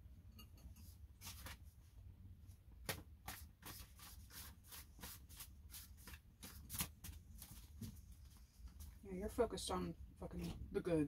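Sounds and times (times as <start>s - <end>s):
cards being shuffled: 1.2s - 1.6s, 2.8s - 7.7s.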